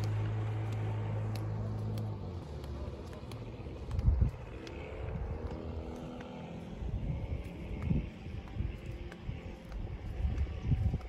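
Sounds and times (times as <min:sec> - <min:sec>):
motorboat engine: 0:00.0 - 0:11.0
wind buffeting microphone: 0:00.0 - 0:11.0.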